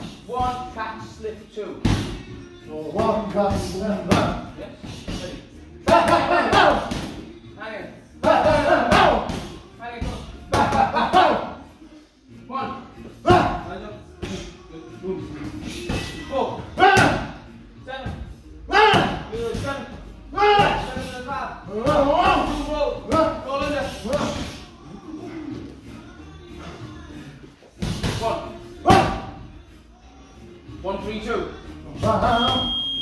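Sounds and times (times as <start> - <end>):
background music: 0.0 - 33.0
boxing gloves punching pads and bag: 3.0 - 7.2, 8.2 - 11.4.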